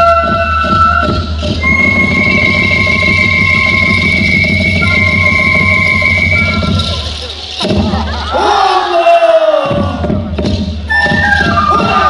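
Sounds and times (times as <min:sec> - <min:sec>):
flute-like melody: 0:00.0 - 0:07.6, 0:10.9 - 0:12.0.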